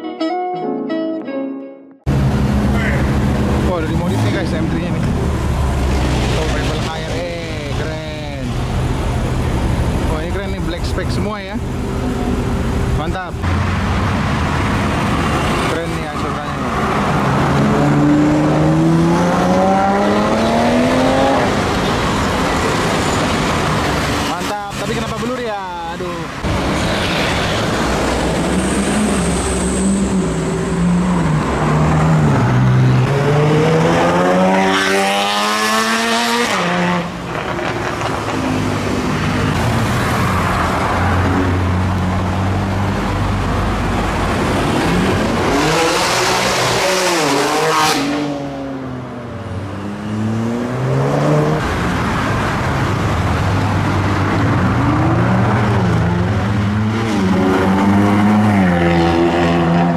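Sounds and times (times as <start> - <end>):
sports car engines revving: 2.1 - 59.9.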